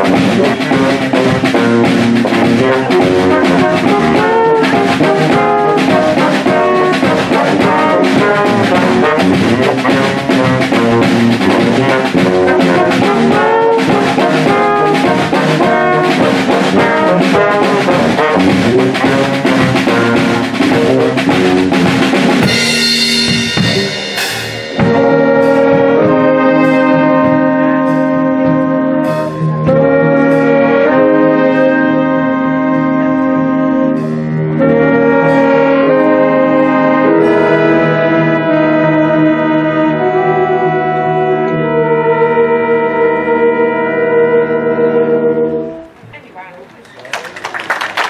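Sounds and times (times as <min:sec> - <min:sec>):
drum kit: 0:00.0 - 0:40.4
horns holding sustained chords: 0:00.0 - 0:46.6
big band playing jazz: 0:00.0 - 0:48.0.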